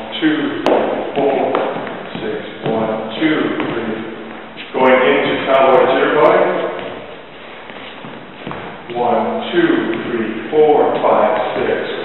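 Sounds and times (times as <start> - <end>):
man talking: 0.0 - 6.9, 8.9 - 12.0.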